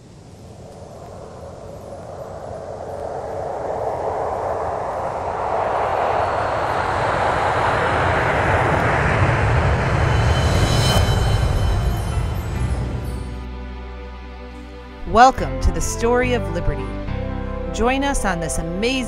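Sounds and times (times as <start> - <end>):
rising whoosh with deep rumble: 0.0 - 14.9.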